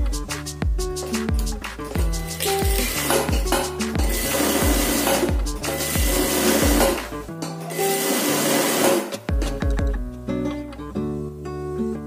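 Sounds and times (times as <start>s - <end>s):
background music: 0.0s - 12.0s
sewing machine stitching: 2.7s - 7.1s, 7.7s - 9.3s.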